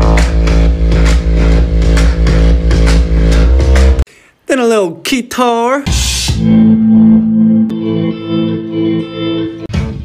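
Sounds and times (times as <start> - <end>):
deep sustained bass line: 0.0 - 4.0
electronic beat with kick and clap: 0.0 - 4.0
sampled loop: 0.0 - 4.0.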